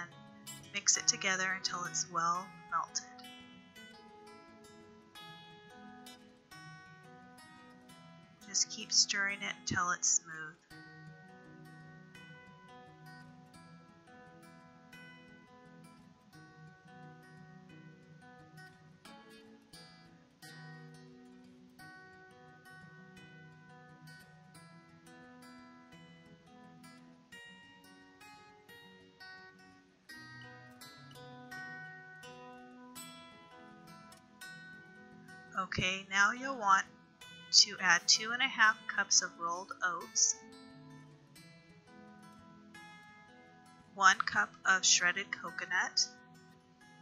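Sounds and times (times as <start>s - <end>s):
acoustic guitar playing: 0.0s - 47.0s.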